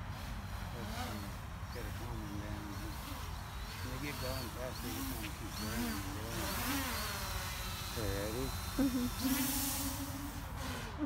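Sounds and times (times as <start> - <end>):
drone high whine: 0.0 - 11.0.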